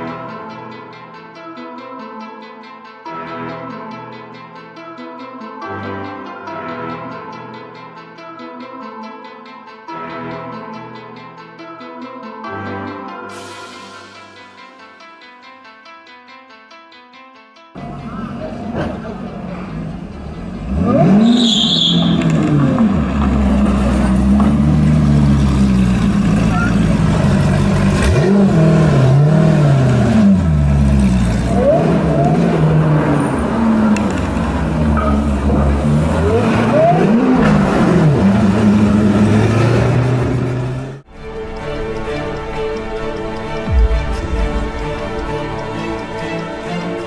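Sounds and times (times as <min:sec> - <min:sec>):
car engine revving: 0:17.8 - 0:41.0.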